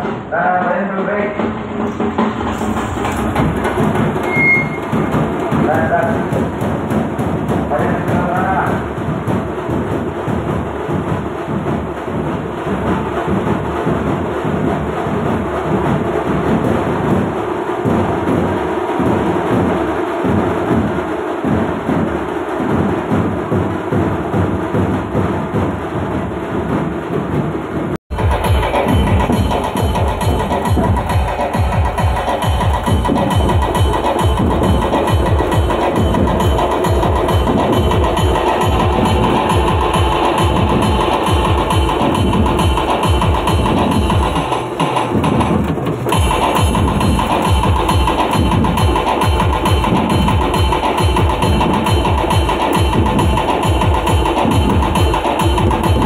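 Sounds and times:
percussion-heavy music: 0.0s - 56.0s.

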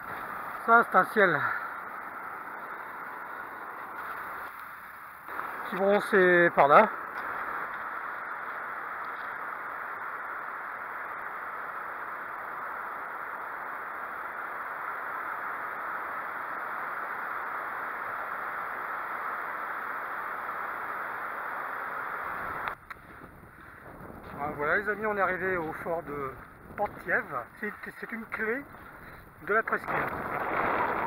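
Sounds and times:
wind: 0.0s - 31.0s.

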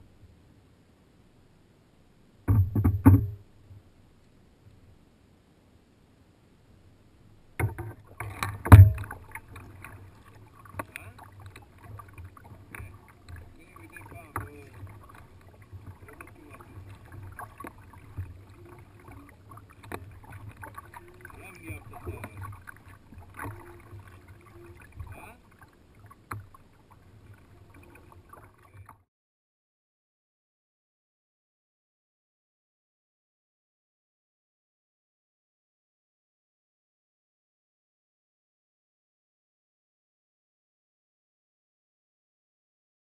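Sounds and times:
knocks on kayak hull: 2.5s - 3.4s, 8.5s - 9.2s
paddle splashes: 7.6s - 29.0s
water lapping: 7.6s - 29.0s
loud thump: 8.7s - 9.1s.

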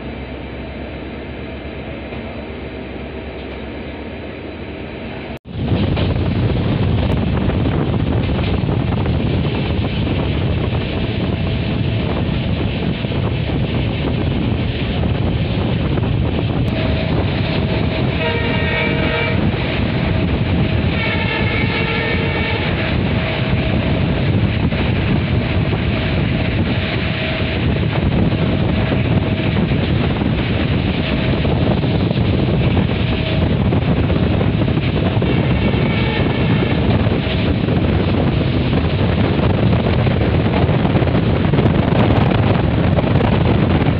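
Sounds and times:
train wheels rumbling on rails: 0.0s - 43.9s
wind rushing past window: 5.4s - 43.9s
locomotive horn blasts: 16.7s - 24.2s, 34.7s - 37.5s.

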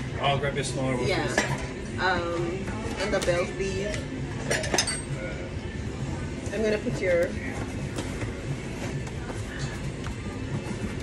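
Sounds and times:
restaurant background: 0.0s - 11.0s
dishes and cutlery clinking: 1.2s - 1.8s, 3.9s - 5.4s.

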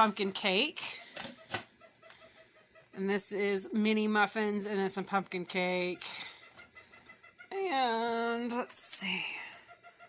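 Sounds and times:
faint chicken clucking: 0.8s - 3.5s, 5.6s - 10.0s.

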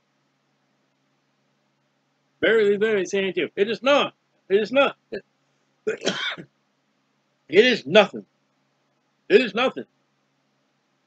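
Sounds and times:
man talking: 2.4s - 5.2s, 5.9s - 6.4s, 7.5s - 8.2s, 9.3s - 9.8s
man clearing his throat: 5.9s - 6.4s.

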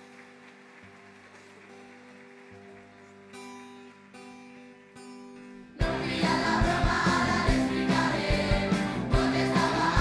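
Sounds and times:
live band playing held chords: 3.0s - 10.0s.

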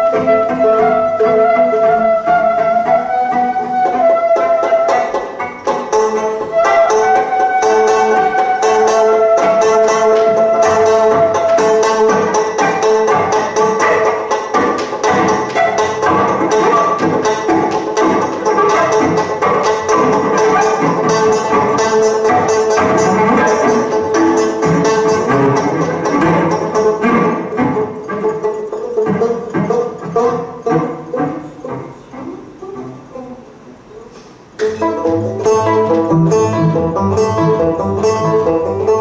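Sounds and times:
acoustic trio playing: 0.0s - 39.0s
banjo picked notes: 0.0s - 39.0s.

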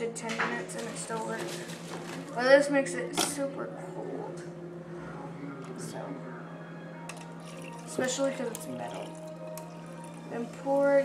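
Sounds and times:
carafe clinking metal cup: 7.1s - 10.3s.

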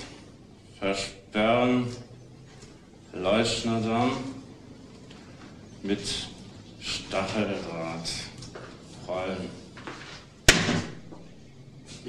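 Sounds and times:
sharp slam with echo: 10.5s - 11.1s.

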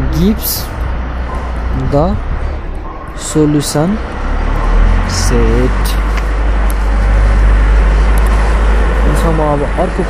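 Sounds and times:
loud low rumble with hiss: 0.0s - 10.0s.

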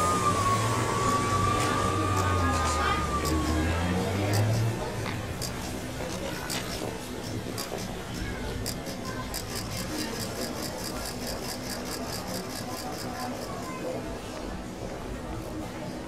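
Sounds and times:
street hubbub with voices: 0.0s - 16.0s
pedestrian crossing signal ticking: 3.1s - 5.7s.

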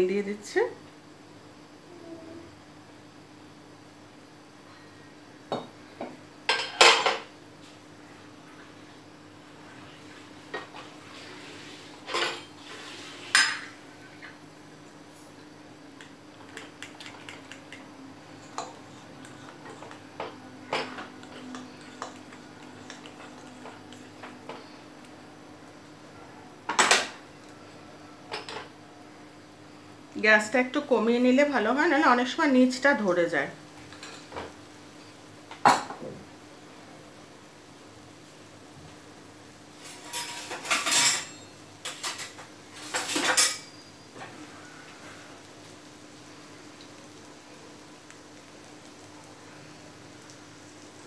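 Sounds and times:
faint steady hum: 0.0s - 51.0s
kitchen utensils clattering: 12.0s - 13.8s, 39.8s - 43.8s
metal spoon stirring batter in bowl: 18.4s - 24.2s.

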